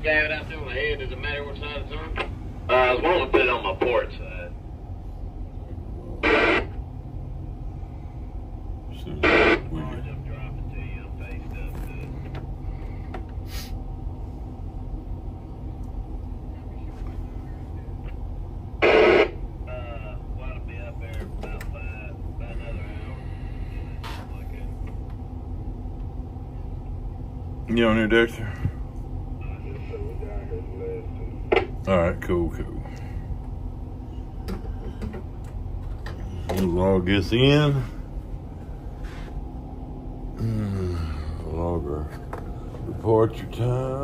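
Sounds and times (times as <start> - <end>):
faint voices over radio: 0.0 - 4.6, 5.6 - 6.8, 8.9 - 12.4, 16.4 - 18.2, 18.8 - 24.9, 29.4 - 33.0
boat engines droning: 0.0 - 44.0.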